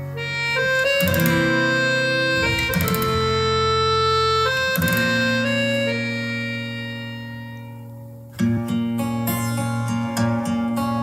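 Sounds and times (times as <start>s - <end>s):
instrumental held chord: 0.0s - 11.0s.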